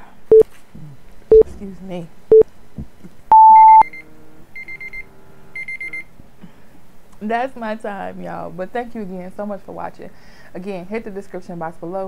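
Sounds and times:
alarm clock beeping: 3.3 - 4.0, 5.6 - 6.0
countdown timer beeps: 3.3 - 4.0.

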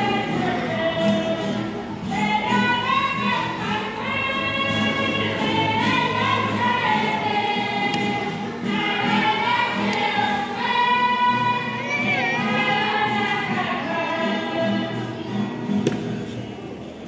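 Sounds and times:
congregation singing a hymn: 0.0 - 16.0.

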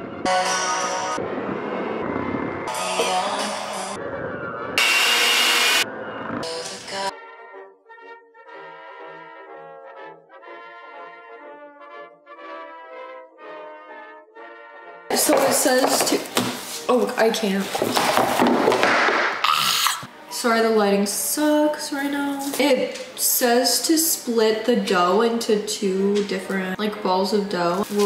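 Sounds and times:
electric hand mixer beating dough: 4.8 - 5.8
soft background music: 6.4 - 18.7, 19.5 - 28.0.

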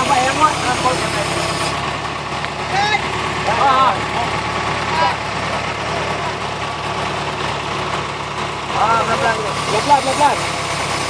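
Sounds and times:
diesel machinery engine idling: 0.0 - 11.0
workers shouting: 2.6 - 6.4.

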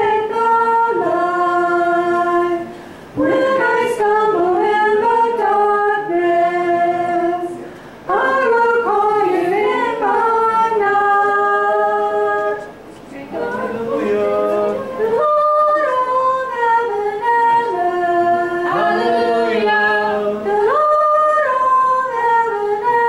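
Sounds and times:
woman singing: 0.0 - 23.0.

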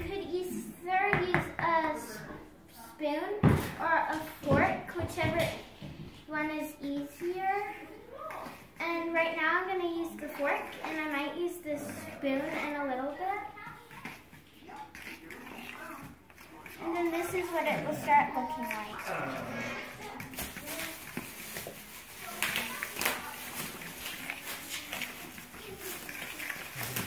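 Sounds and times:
child talking: 0.0 - 5.7, 6.3 - 14.4, 16.8 - 19.1, 22.2 - 26.6.

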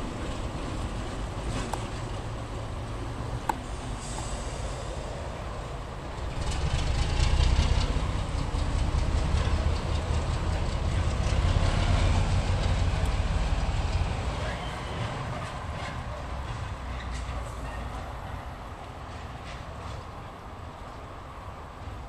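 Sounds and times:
wheels clicking on track: 0.0 - 4.8, 6.1 - 21.0
diesel locomotive engine rumble: 0.0 - 22.0.

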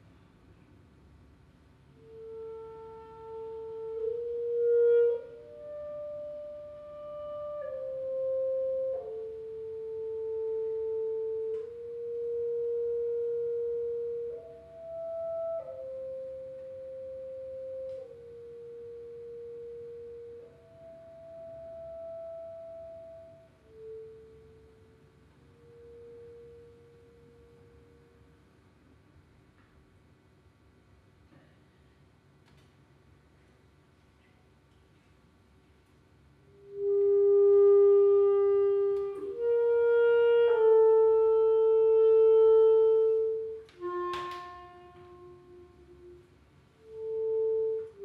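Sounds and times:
solo clarinet playing: 2.0 - 28.5, 36.5 - 48.0.

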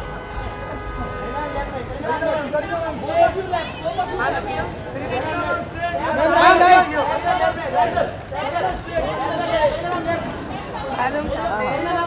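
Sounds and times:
babble of voices: 3.6 - 11.3
brief hiss: 9.2 - 10.0.

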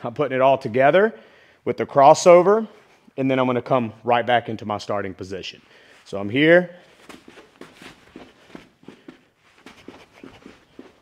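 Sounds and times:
sneaker footsteps on artificial turf: 6.0 - 11.0.

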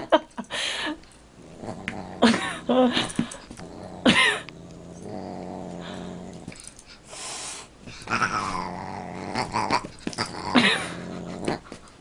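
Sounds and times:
large dog growling: 1.4 - 6.7, 8.0 - 11.8.

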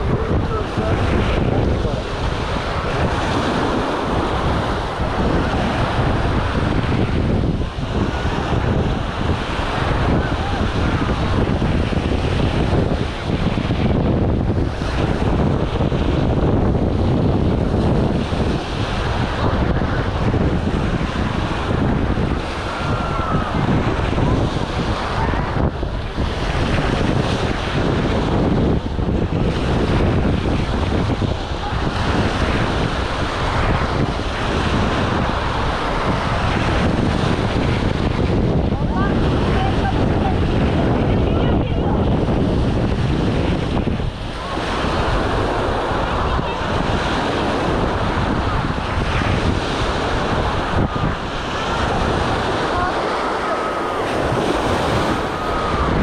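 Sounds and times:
people talking in background: 0.0 - 8.6, 31.3 - 33.9, 38.6 - 42.4, 43.3 - 48.2, 48.8 - 56.0
small waves washing onto shore: 0.0 - 56.0
wind rumbling on microphone: 0.0 - 56.0.

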